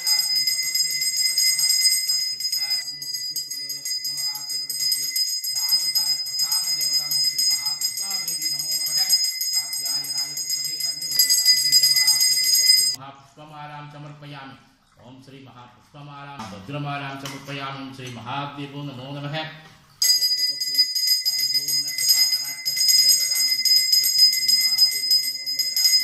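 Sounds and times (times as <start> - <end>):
man chanting: 0.0 - 12.2
hand bell ringing rapidly: 0.0 - 13.0, 20.0 - 26.0.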